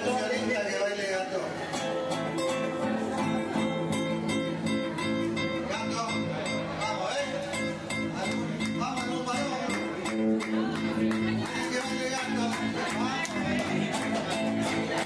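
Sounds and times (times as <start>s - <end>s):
acoustic guitars strumming: 0.0s - 15.0s
electric bass: 1.8s - 15.0s.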